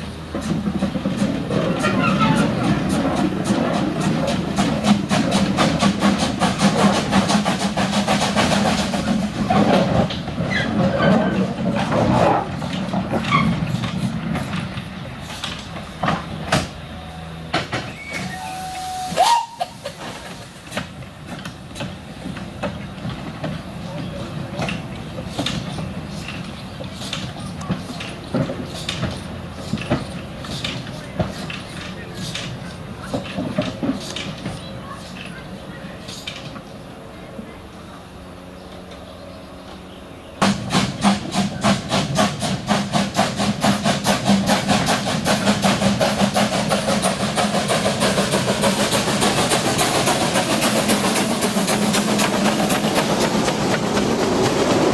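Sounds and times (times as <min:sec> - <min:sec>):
steam hissing: 0:00.0 - 0:09.6, 0:17.9 - 0:33.3, 0:40.4 - 0:54.9
steam locomotive exhaust beats: 0:00.0 - 0:54.9
train knocking on track: 0:00.0 - 0:54.9.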